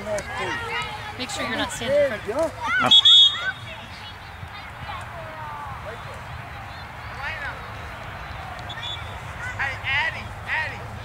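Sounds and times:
young players calling and shouting: 0.0s - 11.0s.

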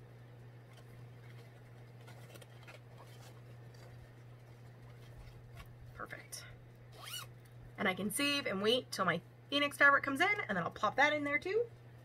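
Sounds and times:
steady low hum: 0.0s - 12.0s
rustling of craft supplies: 0.6s - 6.4s.

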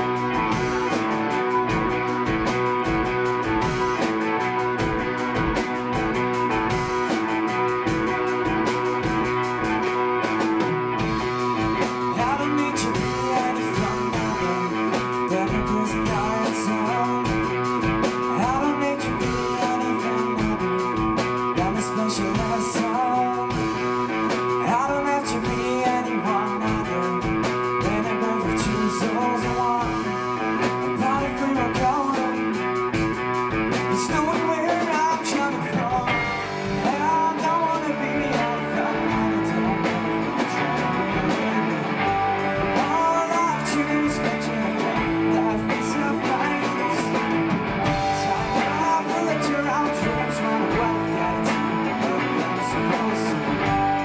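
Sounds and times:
bass guitar: 0.0s - 54.0s
drum kit: 0.0s - 54.0s
electric guitars: 0.0s - 54.0s
man singing: 0.0s - 54.0s.

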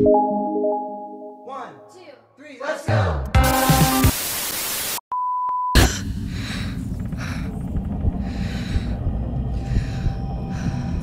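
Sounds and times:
low rumbling drone: 5.8s - 11.0s.

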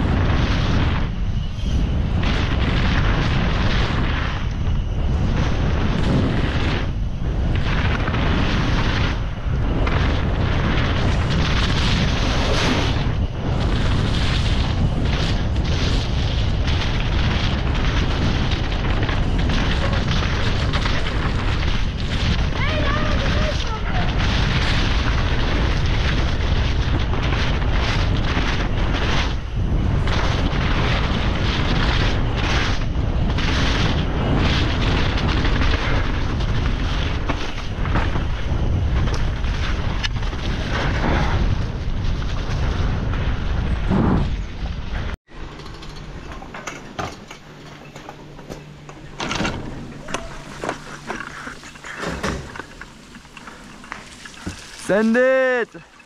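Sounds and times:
wind buffeting microphone: 0.0s - 45.6s
bike rattling: 0.0s - 56.0s
bike tyre roar: 0.0s - 56.0s.

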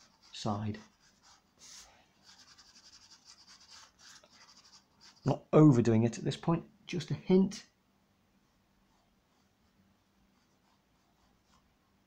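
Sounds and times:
pastel scratching on paper: 0.0s - 5.3s.

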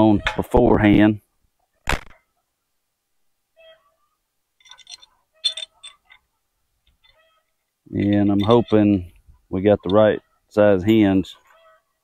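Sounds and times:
metal hinge clinking: 4.6s - 6.2s, 7.9s - 8.9s.

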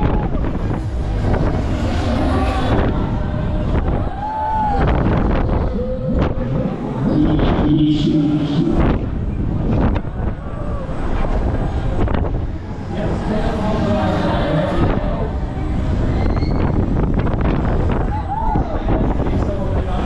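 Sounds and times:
voices: 0.0s - 16.5s
fairground noise: 0.0s - 20.0s
wind rushing over microphone: 0.0s - 20.0s.

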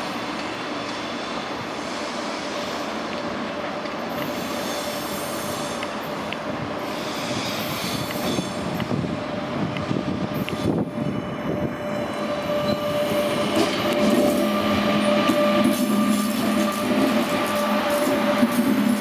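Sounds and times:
electric train running past: 0.0s - 19.0s
rail clicks: 0.0s - 19.0s.

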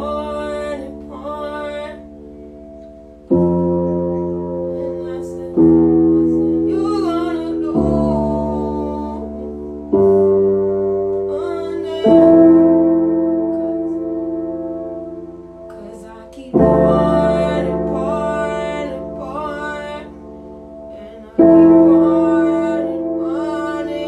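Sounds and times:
slow piano chords: 0.0s - 24.0s.

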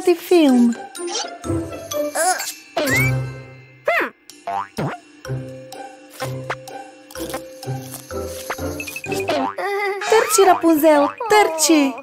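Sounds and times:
cartoon background music: 0.0s - 12.0s
springy cartoon boings: 3.8s - 5.0s, 8.9s - 11.8s.

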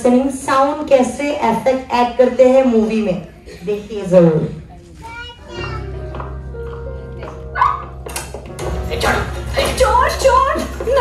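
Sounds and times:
noisy passage with voices: 1.2s - 5.9s.

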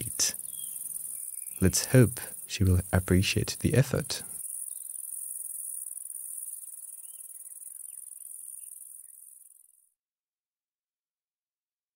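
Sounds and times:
high-pitched insect chorus: 0.0s - 9.8s.

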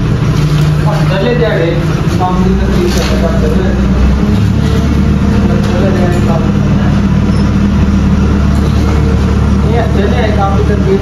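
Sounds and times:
engine droning: 0.0s - 11.0s.

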